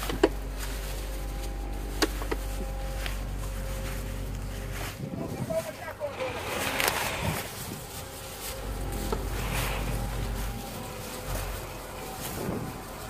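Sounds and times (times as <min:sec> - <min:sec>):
indistinct voices: 0:00.0 - 0:13.0
outdoor background noise: 0:00.0 - 0:13.0.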